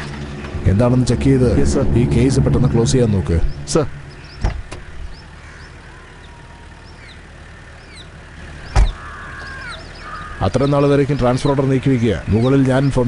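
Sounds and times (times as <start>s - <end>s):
small birds chirping: 3.6s - 13.0s.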